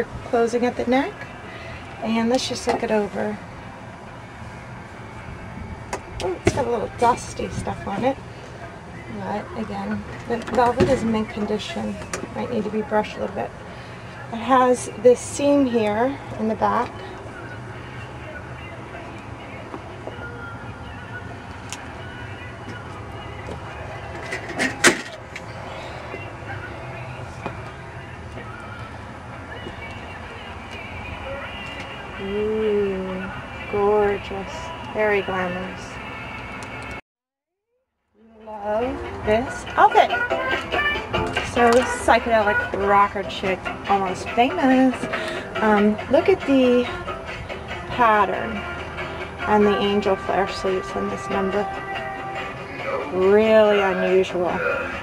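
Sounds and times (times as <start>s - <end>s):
low outdoor rumble: 0.0s - 37.0s, 38.2s - 55.0s.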